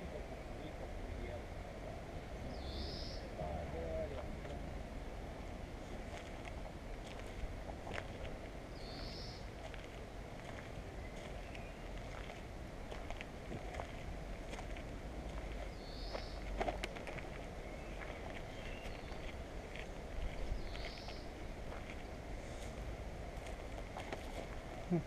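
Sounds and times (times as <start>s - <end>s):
low outdoor hum: 0.0s - 25.0s
bird chirping: 2.3s - 3.6s, 8.7s - 9.7s, 11.0s - 12.3s, 15.5s - 16.8s, 17.4s - 21.5s
footsteps through grass and dirt: 5.8s - 25.0s.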